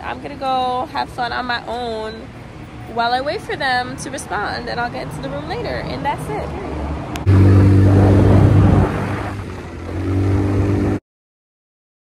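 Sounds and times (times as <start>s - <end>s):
small engine revving: 7.2s - 11.0s.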